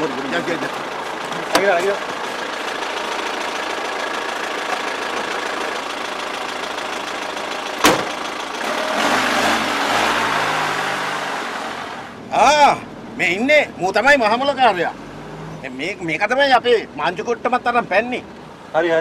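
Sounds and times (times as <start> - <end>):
vehicle engine running: 0.0 - 9.6
car door slam: 7.8 - 8.2.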